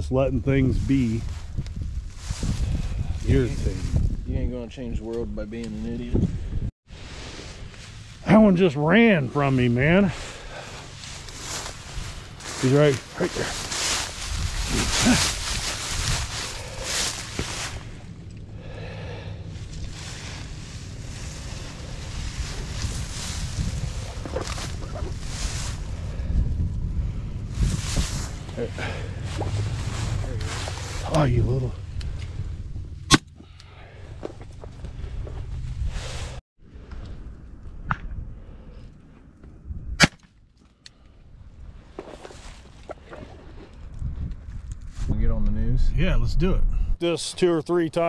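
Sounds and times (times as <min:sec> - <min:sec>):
wind buffeting microphone: 0:00.0 - 0:06.7, 0:09.8 - 0:33.1, 0:43.1 - 0:47.0
dry reeds and grass rustling: 0:00.2 - 0:04.6, 0:06.9 - 0:36.9.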